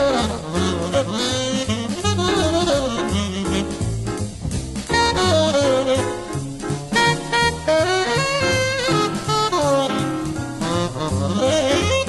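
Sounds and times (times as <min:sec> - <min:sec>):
drums: 0:00.0 - 0:12.0
tenor saxophone playing bebop: 0:00.0 - 0:12.0
walking upright bass: 0:00.0 - 0:12.0.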